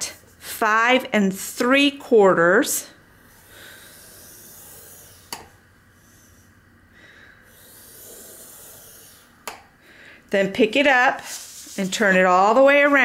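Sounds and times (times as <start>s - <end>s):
stylus scraping paper: 3.4s - 5.3s, 7.5s - 9.3s, 11.0s - 13.0s.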